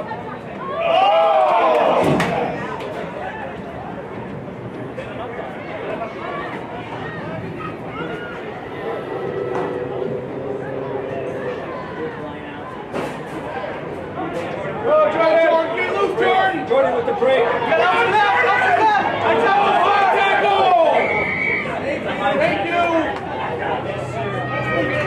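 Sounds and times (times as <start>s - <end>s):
voices shouting: 15.5s - 25.0s.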